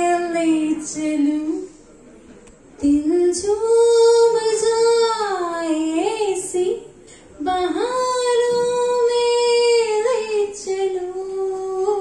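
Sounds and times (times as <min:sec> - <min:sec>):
woman singing unaccompanied: 0:02.8 - 0:12.0.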